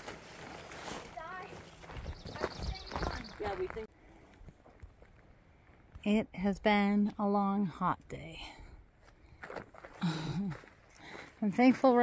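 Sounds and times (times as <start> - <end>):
footsteps on dirt trail: 0.0 - 6.0, 9.0 - 12.0.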